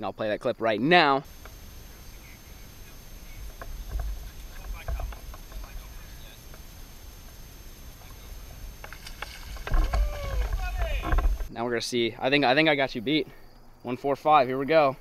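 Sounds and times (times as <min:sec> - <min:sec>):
wind rumble on microphone: 0:01.3 - 0:11.5.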